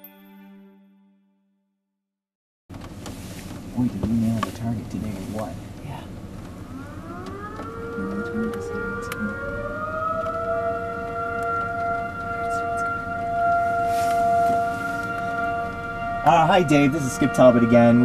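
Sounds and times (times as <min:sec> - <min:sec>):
tornado warning siren wailing: 0:03.0 - 0:18.0.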